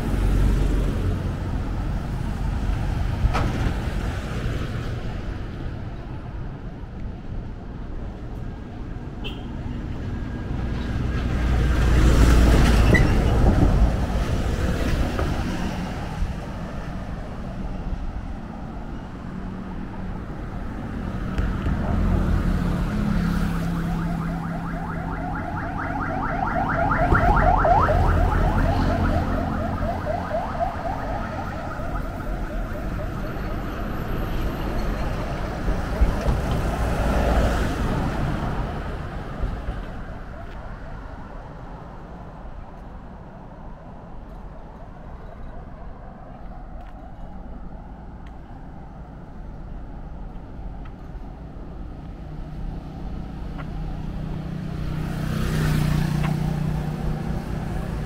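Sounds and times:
low traffic rumble: 0:00.0 - 0:58.0
vehicles passing loudly: 0:00.0 - 0:58.0.

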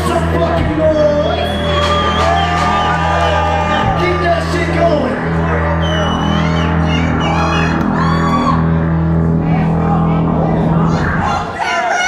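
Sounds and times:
heavy bass: 0:00.0 - 0:12.0.

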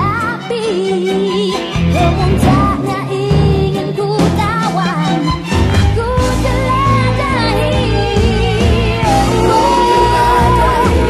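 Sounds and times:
woman singing pop ballad: 0:00.0 - 0:11.0
band accompaniment: 0:01.7 - 0:11.0
steady bass line: 0:01.8 - 0:11.0.

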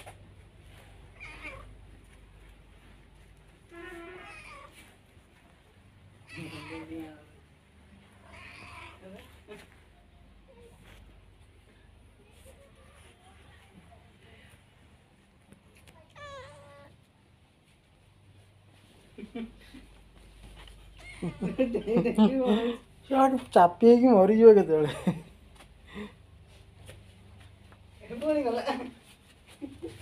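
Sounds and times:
cat meowing: 0:01.2 - 0:01.7, 0:03.7 - 0:04.8, 0:06.2 - 0:07.0, 0:08.2 - 0:09.0, 0:16.1 - 0:16.9.

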